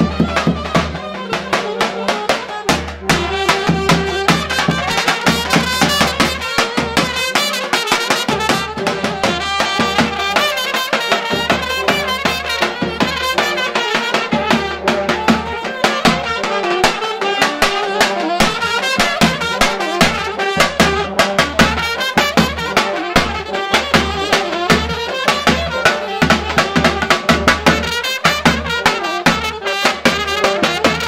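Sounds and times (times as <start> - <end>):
brass band playing: 0.0 - 31.0
bass drum beating: 2.4 - 7.4, 8.3 - 10.5.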